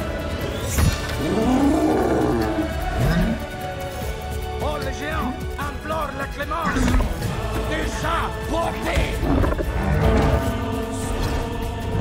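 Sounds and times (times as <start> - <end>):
orchestral film music: 0.0 - 12.0.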